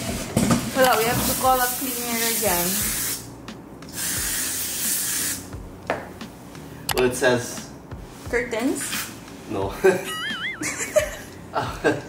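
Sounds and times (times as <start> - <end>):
spray hissing onto fabric: 1.3 - 3.3, 3.9 - 5.5.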